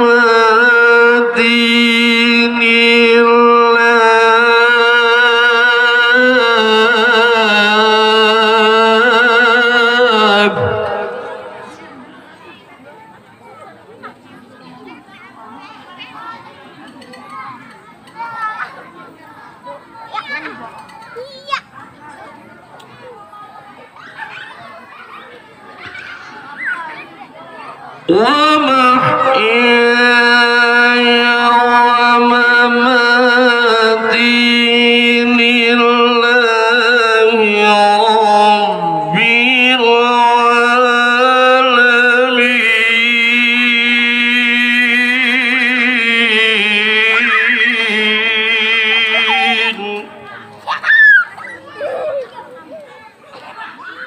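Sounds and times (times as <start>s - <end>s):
man chanting recitation into microphone: 0.0s - 11.8s, 28.1s - 50.4s
children chattering and calling out: 0.0s - 54.0s
child's high squeal: 50.7s - 52.3s.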